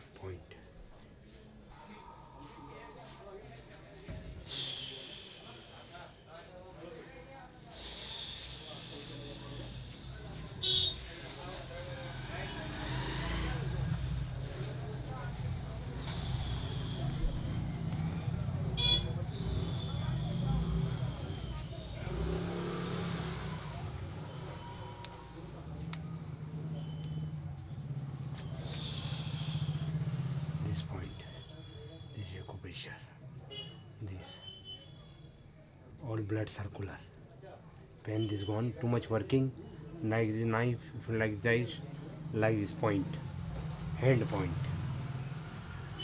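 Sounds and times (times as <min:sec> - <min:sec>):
road traffic rumble: 0:04.4 - 0:06.7, 0:07.4 - 0:36.0, 0:36.9 - 0:46.0
motorcycles passing: 0:07.9 - 0:31.0, 0:41.8 - 0:46.0.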